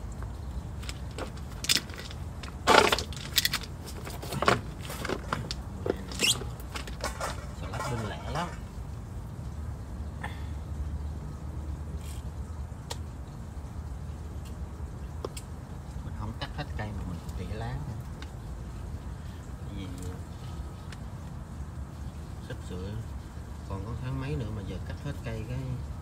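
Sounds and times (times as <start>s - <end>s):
rustling leaves: 0.0s - 26.0s.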